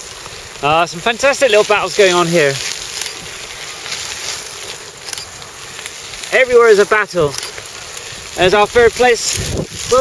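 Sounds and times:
bike tyres rolling on gravel: 0.0 - 10.0
faint bike clicks: 1.3 - 9.6.

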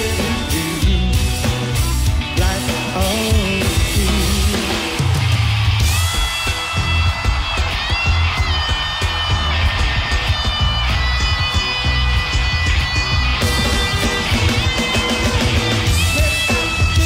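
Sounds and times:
bass guitar: 0.0 - 17.0
drums: 0.0 - 17.0
electric guitar with bends: 0.0 - 17.0.

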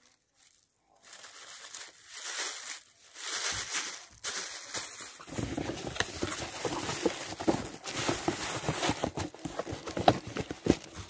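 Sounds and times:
objects knocking and clicking: 5.2 - 11.0.

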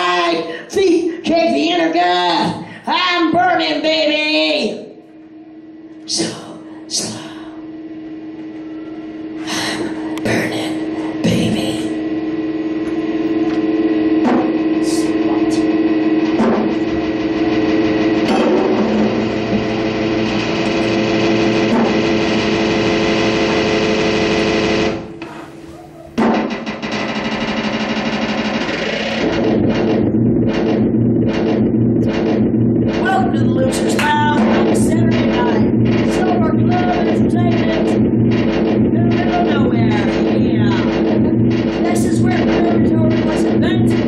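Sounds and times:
dense droning tone: 0.0 - 44.0
drum kit playing: 9.5 - 44.0.

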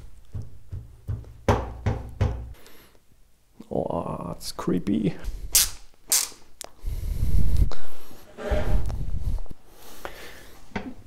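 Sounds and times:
scraping: 8.2 - 9.2.

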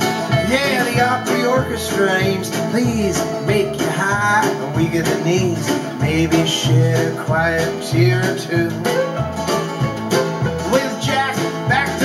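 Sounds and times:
acoustic guitar strumming: 0.0 - 12.0
steady bass beat: 0.0 - 12.0.

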